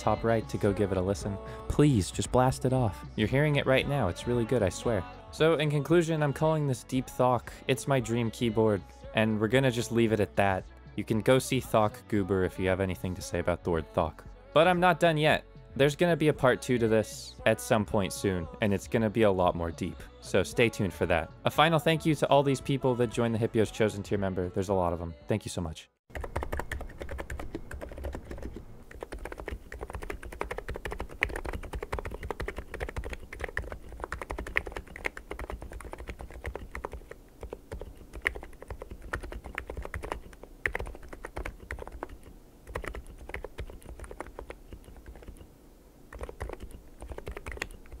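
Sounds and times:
mechanical keyboard typing: 0:26.1 - 0:45.4, 0:46.1 - 0:48.0.

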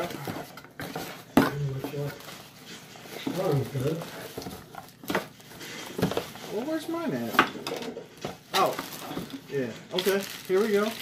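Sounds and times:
cardboard rustling and knocks: 0:03.1 - 0:09.4.

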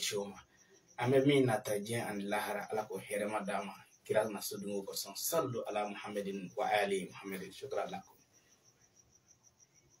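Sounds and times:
faint high-pitched pulsed chirping: 0:00.0 - 0:10.0.

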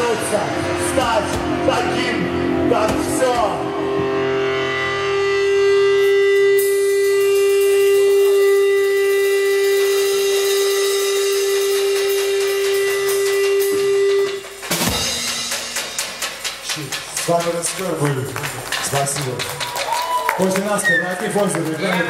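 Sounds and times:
electric guitar feedback: 0:00.0 - 0:15.8.

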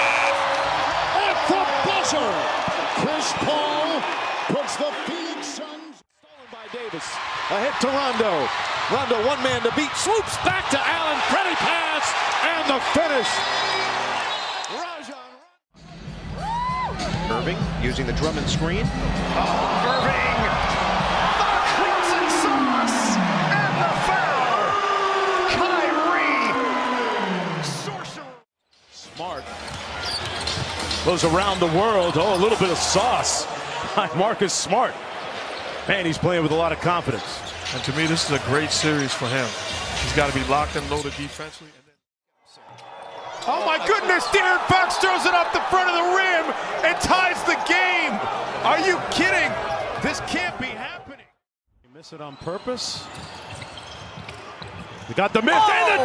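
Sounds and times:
arena crowd noise: 0:00.0 - 0:28.4, 0:29.0 - 0:41.6, 0:42.4 - 0:56.0.

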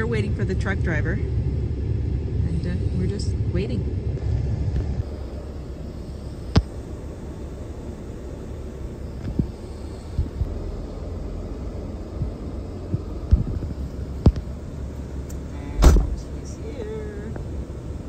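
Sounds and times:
low vehicle rumble: 0:00.0 - 0:18.0.

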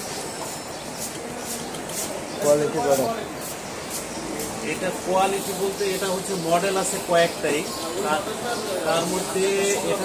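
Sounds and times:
busy street traffic rumble: 0:00.0 - 0:10.0.

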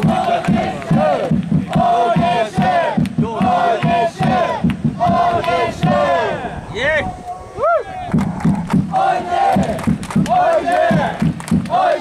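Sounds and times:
rhythmic drum beat: 0:00.0 - 0:06.4, 0:08.1 - 0:12.0
crowd chanting: 0:00.0 - 0:06.6, 0:07.2 - 0:12.0.

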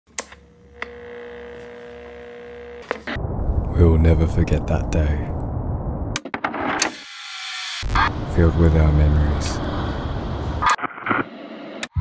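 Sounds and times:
steady electric hum: 0:00.2 - 0:03.2.

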